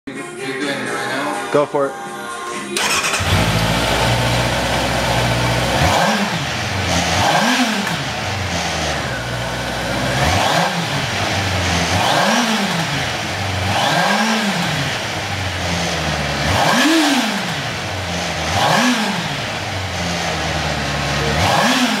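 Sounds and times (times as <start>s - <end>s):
motorcycle engine idling and revving: 2.8s - 22.0s.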